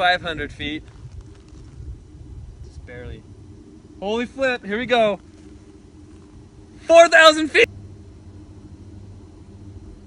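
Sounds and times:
faint hum: 0.0s - 10.0s
low outdoor rumble: 0.0s - 10.0s.

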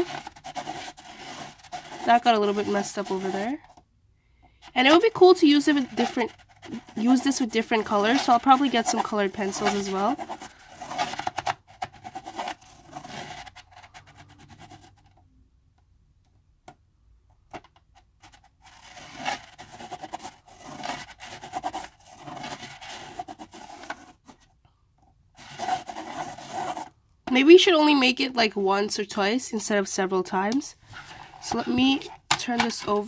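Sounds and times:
pencil scratching on paper: 0.0s - 3.6s, 4.7s - 15.0s, 18.6s - 24.3s, 25.4s - 26.9s
plastic gear scrapes and clicks: 0.0s - 3.8s, 18.2s - 24.2s.

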